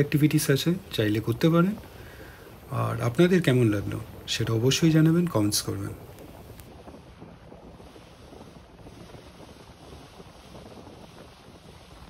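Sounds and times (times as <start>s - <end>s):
water rushing past hull: 0.0s - 12.0s
wind buffeting microphone: 0.0s - 12.0s.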